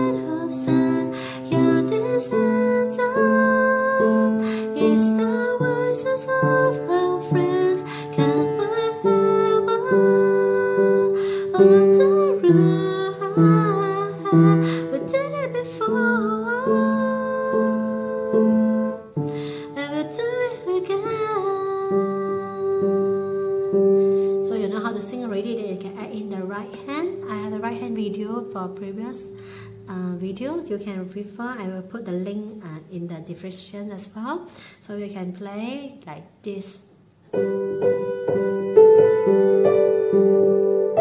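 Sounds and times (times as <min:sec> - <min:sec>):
woman's voice: 0:00.0 - 0:19.0, 0:19.8 - 0:23.8, 0:24.4 - 0:36.9
piano chords: 0:00.0 - 0:30.9, 0:37.2 - 0:41.0
woman singing: 0:00.0 - 0:32.8.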